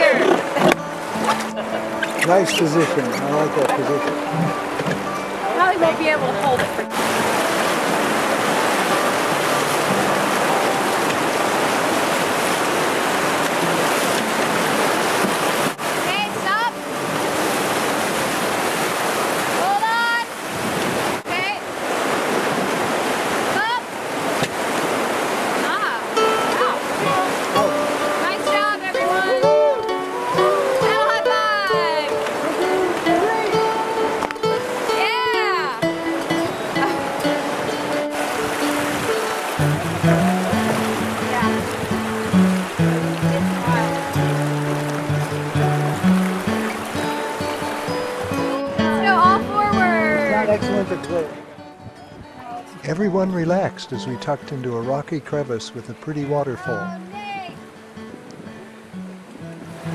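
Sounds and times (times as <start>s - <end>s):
voices calling out: 0.0s - 11.1s, 25.5s - 51.6s, 52.6s - 57.6s
music: 0.0s - 11.4s, 16.1s - 17.6s, 25.7s - 59.9s
whitewater roaring: 0.0s - 51.6s, 52.5s - 59.9s.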